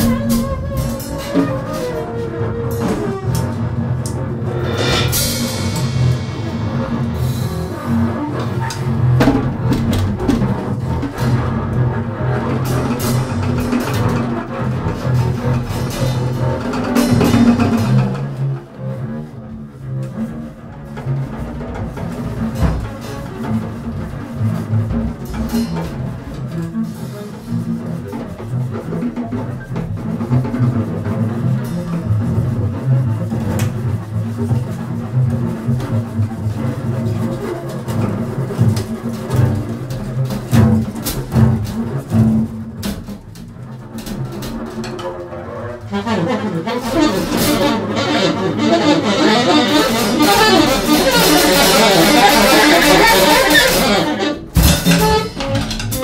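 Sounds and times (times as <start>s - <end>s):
bowed double bass notes: 0.0s - 56.0s
cymbals scraped and struck: 4.5s - 9.0s.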